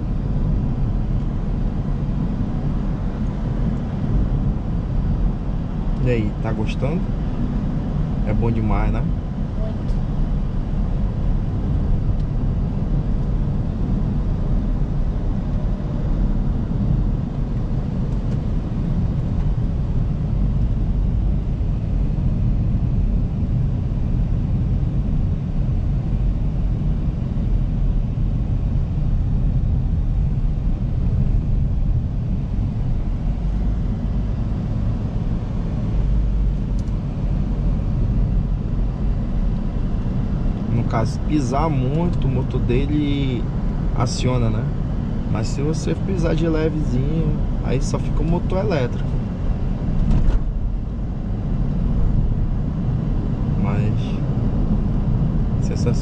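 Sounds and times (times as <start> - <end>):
road and tyre rumble in car: 0.0 - 56.0.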